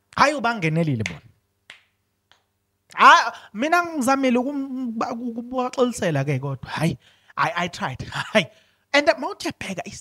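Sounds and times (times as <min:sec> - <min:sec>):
finger snap: 0:01.0 - 0:02.5.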